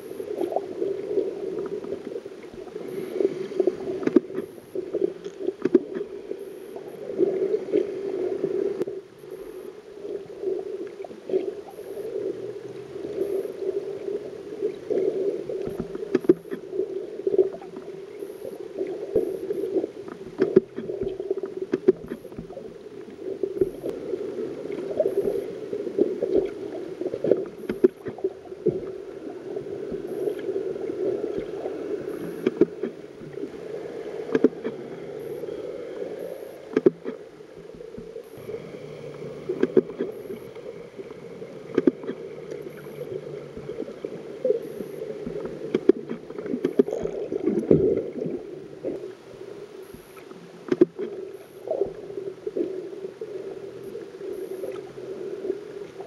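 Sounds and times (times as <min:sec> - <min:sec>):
swirling water: 0:00.0 - 0:56.0
underwater gurgling and sloshing: 0:00.0 - 0:56.0.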